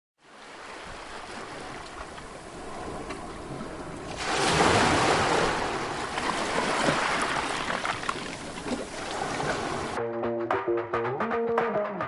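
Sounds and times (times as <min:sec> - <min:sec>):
waves: 0:00.2 - 0:10.0
wind: 0:00.2 - 0:10.0.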